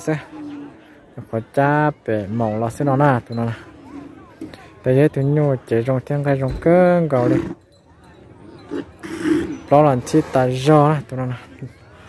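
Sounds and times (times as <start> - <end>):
faint scattered outdoor sounds: 0.0 - 12.0.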